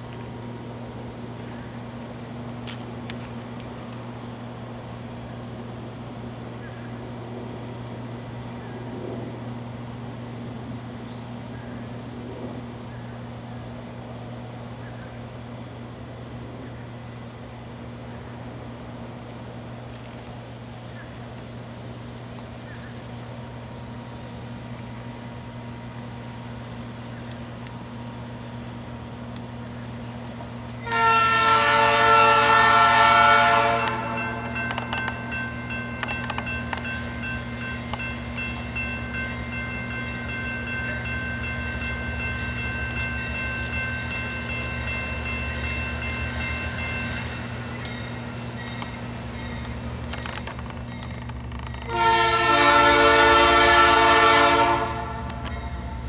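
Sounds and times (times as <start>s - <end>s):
diesel locomotive engine rumble: 0.0s - 56.0s
faint steady high tones: 30.7s - 56.0s
locomotive air horn blast: 30.8s - 34.6s, 51.8s - 56.0s.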